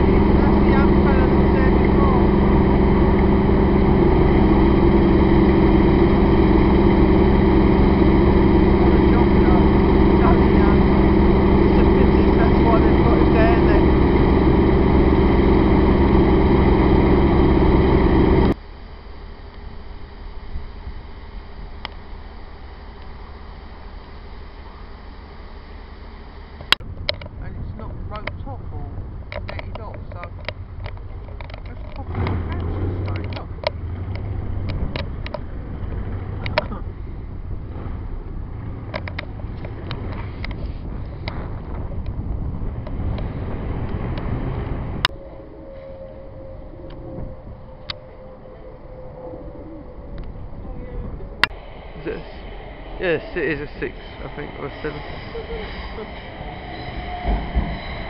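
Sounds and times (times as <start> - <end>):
diesel locomotive idling: 0.0 - 58.0.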